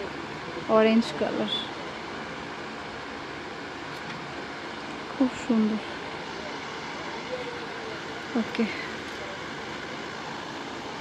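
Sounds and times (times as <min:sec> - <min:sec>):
shop floor murmur and rumble: 0:00.0 - 0:11.0
faint distant voice: 0:06.2 - 0:09.9.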